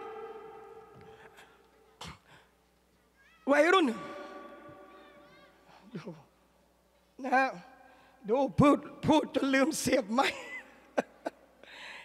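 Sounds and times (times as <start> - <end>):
man's amplified voice: 3.5 - 5.2, 8.3 - 10.4.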